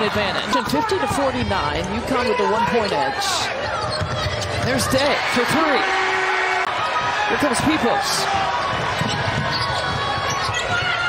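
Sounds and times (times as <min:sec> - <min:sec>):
arena noise: 0:00.0 - 0:11.0
basketball bouncing on hardwood: 0:08.6 - 0:11.0.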